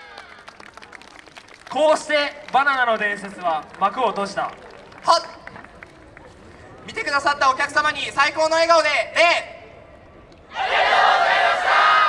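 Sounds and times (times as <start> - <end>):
outdoor crowd ambience: 0.0 - 12.0
loud shout: 10.5 - 12.0.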